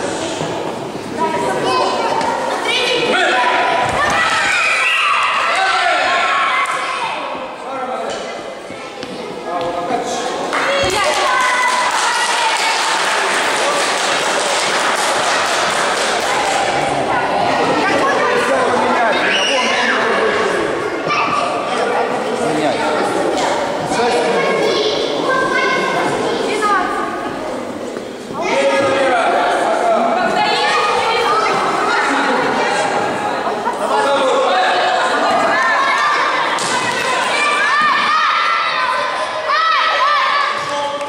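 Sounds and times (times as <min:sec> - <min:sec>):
voices chattering in a hall: 0:00.0 - 0:41.0
children shouting and cheering: 0:01.5 - 0:07.4, 0:10.5 - 0:21.7, 0:33.8 - 0:40.9.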